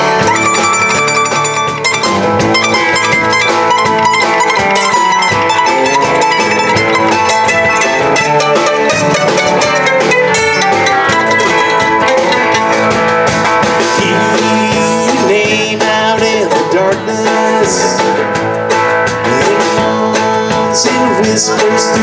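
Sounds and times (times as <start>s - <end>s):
bluegrass band playing: 0.0s - 22.0s
steady drum beat: 0.0s - 22.0s.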